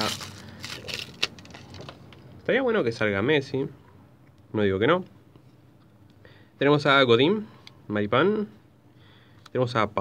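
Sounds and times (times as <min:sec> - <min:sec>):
wrapper tearing and crinkling: 0:00.0 - 0:01.9.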